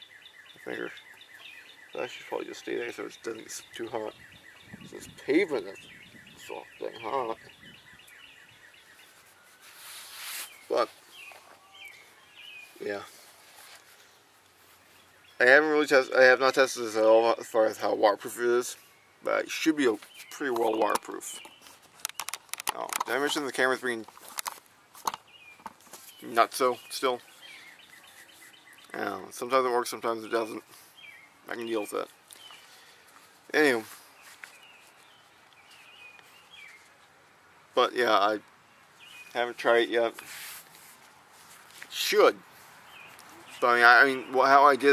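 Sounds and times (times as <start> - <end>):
small bird chirping: 0.0 - 13.1, 25.1 - 29.3
outdoor background noise: 0.0 - 44.9
rustling noise: 8.8 - 15.2, 19.9 - 28.8, 32.0 - 37.2, 40.1 - 43.6.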